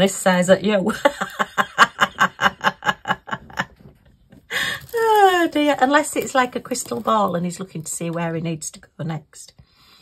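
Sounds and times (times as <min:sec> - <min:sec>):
woman laughing: 0:00.9 - 0:03.9.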